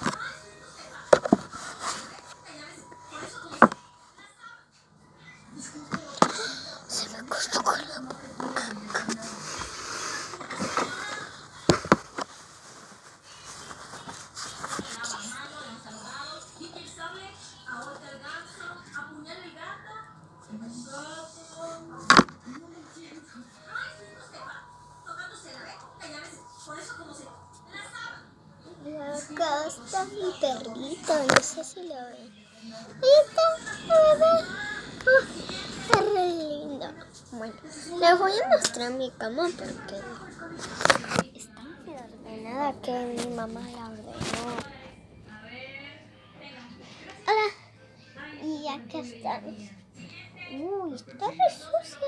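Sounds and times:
girl talking quietly: 6.3 - 9.6
girl singing wordless notes: 33.0 - 36.8.

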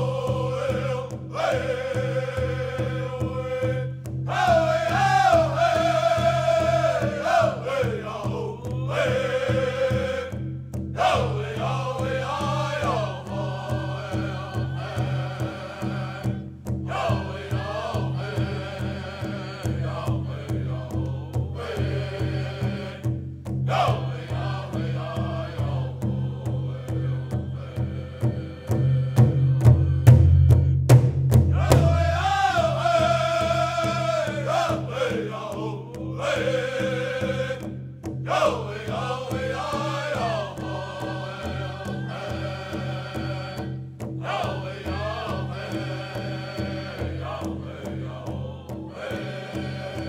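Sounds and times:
group singing in chorus: 0.0 - 30.8, 31.5 - 50.0
steady beat on large drum: 28.3 - 35.3.

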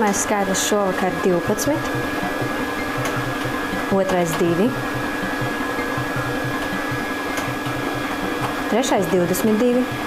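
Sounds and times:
lottery machine blower: 0.0 - 10.0.

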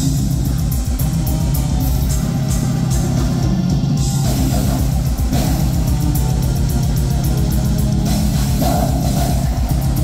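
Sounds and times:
heavy distorted guitars: 0.0 - 10.0.

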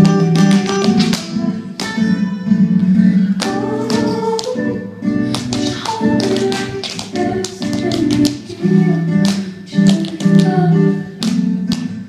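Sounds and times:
dance shoes tapping on wooden floor: 0.0 - 12.0
recorded music: 0.0 - 12.0.

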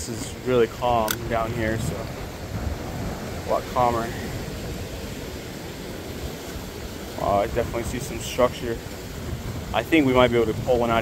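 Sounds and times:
ocean surf around rocks: 0.0 - 11.0
wind rumble on microphone: 0.0 - 11.0.

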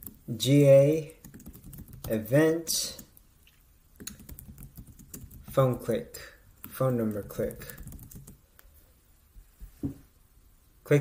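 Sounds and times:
keyboard typing: 1.2 - 2.2, 4.0 - 5.7, 6.6 - 8.4.

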